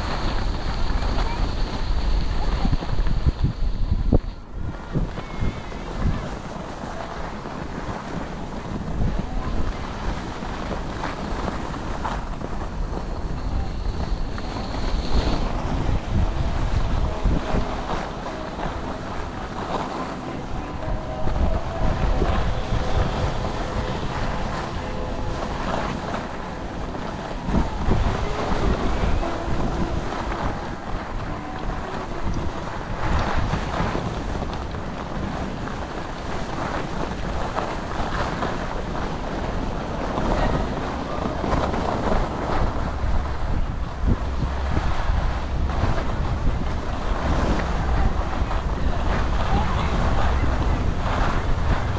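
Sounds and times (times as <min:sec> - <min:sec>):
skis sliding on snow: 0:00.0 - 0:51.9
wind buffeting microphone: 0:00.0 - 0:51.9.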